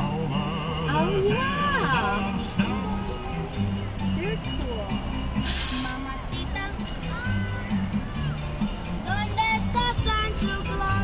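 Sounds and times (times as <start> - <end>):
christmas music on car radio: 0.0 - 11.0
loud radio hiss: 5.4 - 6.1.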